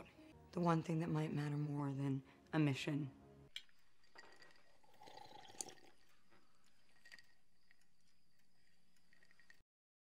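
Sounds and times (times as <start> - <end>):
person sipping water: 3.6 - 9.6.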